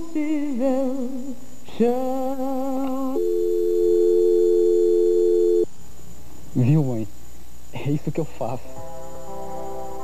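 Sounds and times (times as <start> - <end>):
telephone line tone: 3.1 - 5.7.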